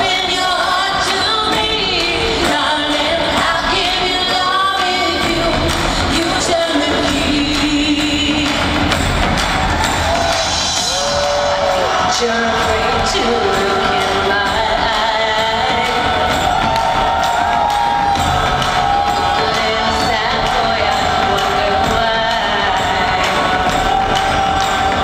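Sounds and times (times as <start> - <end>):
large drums beating: 0.0 - 25.0
live pop band with singing: 0.0 - 25.0.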